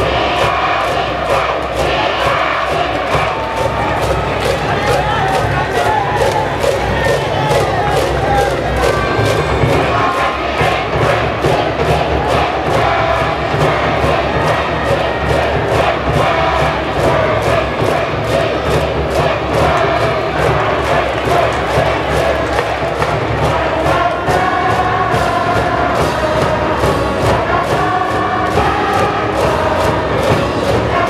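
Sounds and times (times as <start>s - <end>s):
crowd of students chanting: 0.0s - 31.0s
steady drum beat: 0.0s - 31.0s.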